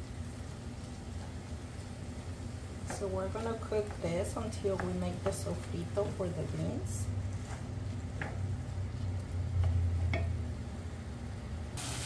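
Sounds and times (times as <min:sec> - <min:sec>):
steady low hum: 0:00.0 - 0:11.8
spatula scraping and tapping pan: 0:02.8 - 0:06.1, 0:07.3 - 0:08.6.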